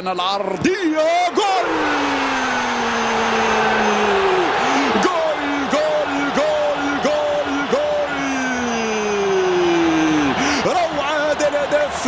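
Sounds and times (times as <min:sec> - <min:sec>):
crowd noise: 0:00.0 - 0:12.0
commentator shouting goal call: 0:04.9 - 0:09.6.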